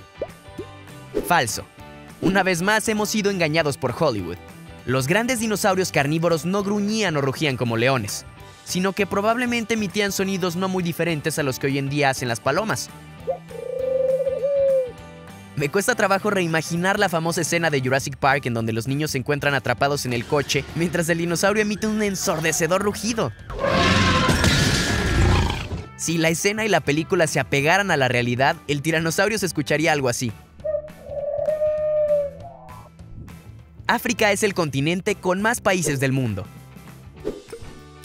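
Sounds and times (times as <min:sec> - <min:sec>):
soft background music: 0:00.0 - 0:24.3, 0:25.3 - 0:38.0
dove cooing: 0:13.2 - 0:14.9, 0:30.6 - 0:32.9.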